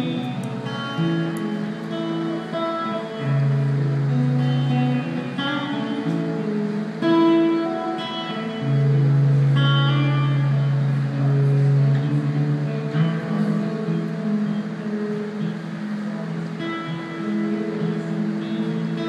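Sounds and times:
acoustic guitar melody: 0.0s - 19.0s.

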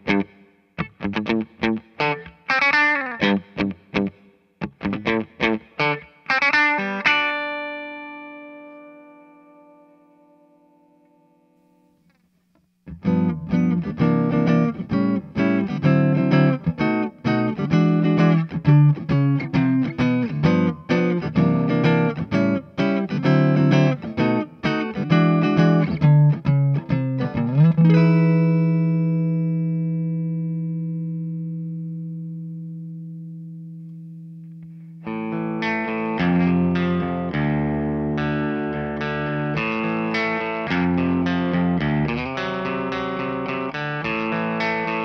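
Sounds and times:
electric guitar picked chords: 0.0s - 12.0s, 12.8s - 45.0s.

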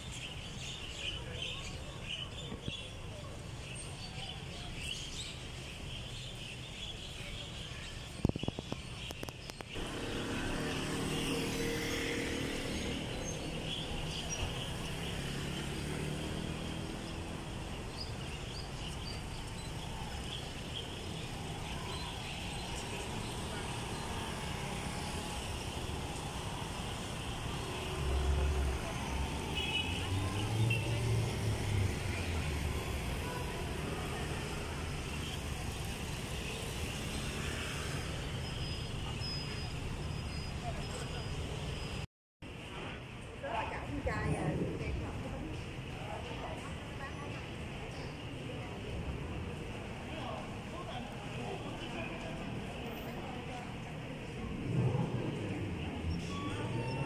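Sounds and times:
traffic hum: 0.0s - 57.0s
cars and scooters passing: 8.5s - 57.0s.

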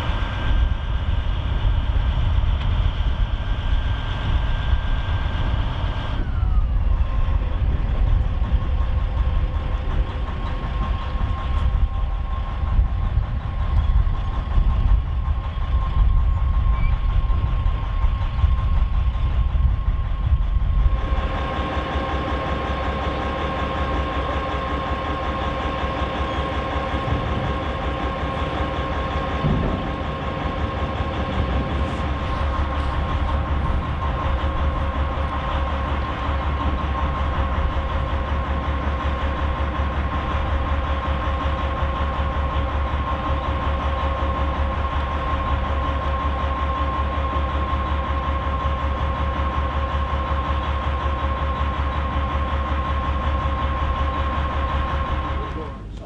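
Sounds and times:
diesel locomotive engine rumble: 0.0s - 56.0s
engine whine: 0.0s - 56.0s.

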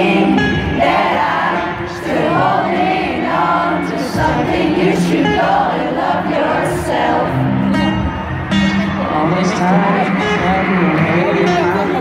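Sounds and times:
amplified pop music: 0.0s - 12.0s
stadium crowd singing along: 0.0s - 12.0s.

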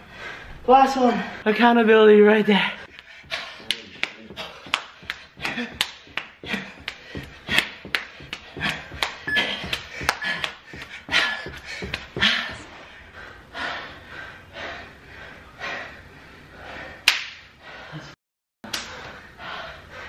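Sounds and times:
heavy breathing: 2.5s - 18.2s, 18.8s - 20.0s.

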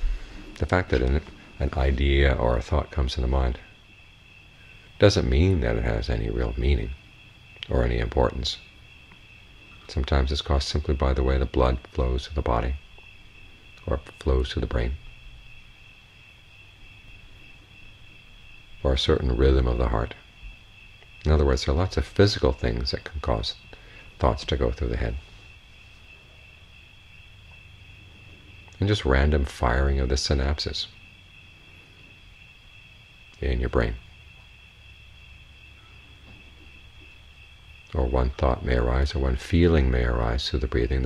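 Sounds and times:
low hum: 0.0s - 3.8s
crickets trilling: 0.0s - 41.0s
faint low hum: 0.0s - 41.0s.

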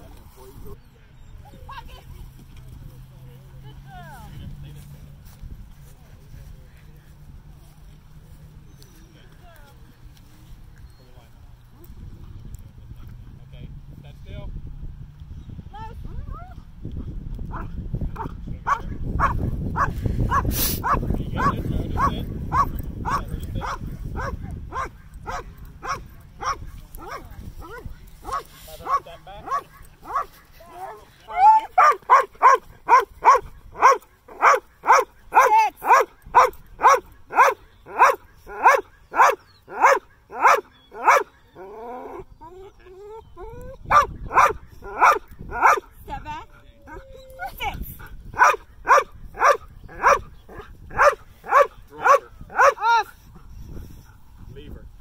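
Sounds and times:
dog barking: 17.5s - 31.0s, 31.8s - 42.2s, 43.9s - 45.9s, 48.3s - 53.0s.

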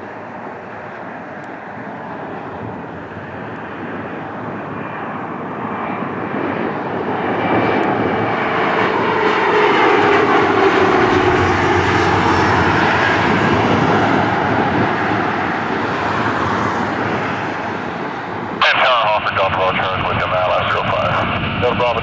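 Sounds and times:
jet engine noise: 0.0s - 22.0s.

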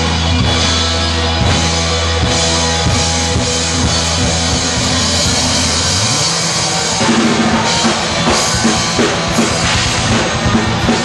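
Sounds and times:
bass guitar ringing: 0.0s - 11.0s
distorted electric guitars: 0.0s - 11.0s
rock drum beat: 0.0s - 11.0s.

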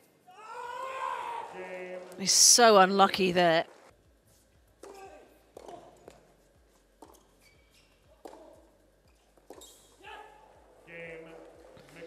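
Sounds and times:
tennis ball hit with rackets: 4.8s - 6.2s, 8.2s - 8.6s, 9.4s - 9.7s.

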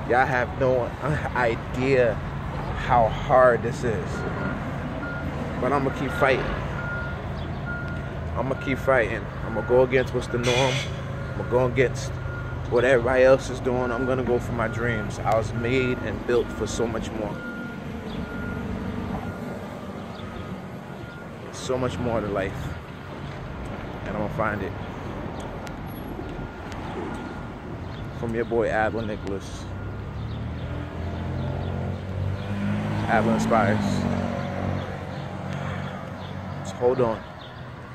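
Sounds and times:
low rumble of street traffic: 0.0s - 37.9s.

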